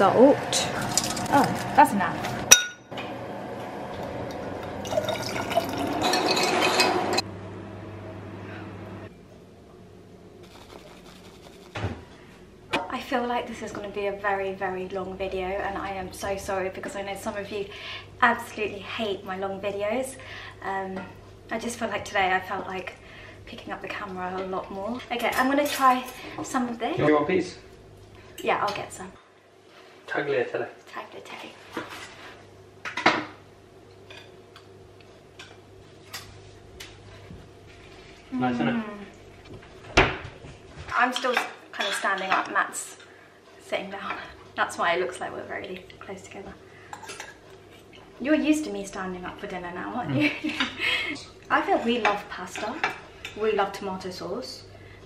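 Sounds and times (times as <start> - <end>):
drink pouring into glass of ice: 4.7 - 7.2
cutlery scraping on plate: 46.9 - 47.4.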